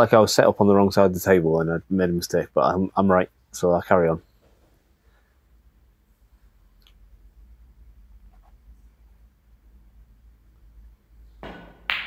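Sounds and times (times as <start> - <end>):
cue striking ball knock: 11.4 - 12.0
snooker balls clicking: 11.4 - 12.0.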